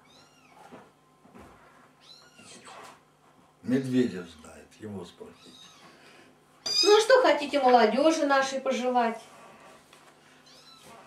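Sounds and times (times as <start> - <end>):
cat meowing: 5.4 - 6.0.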